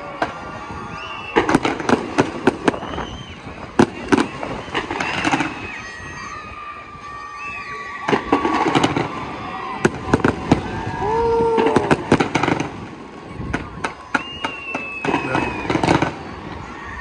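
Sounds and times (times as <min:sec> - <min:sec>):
fireworks bangs and crackles: 0:00.0 - 0:17.0
people's voices: 0:00.0 - 0:17.0.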